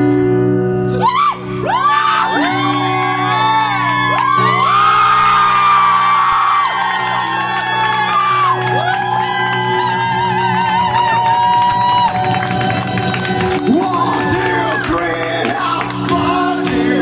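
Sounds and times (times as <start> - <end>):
crowd cheering and whooping: 1.0 - 17.0
acoustic guitar strumming: 12.0 - 17.0.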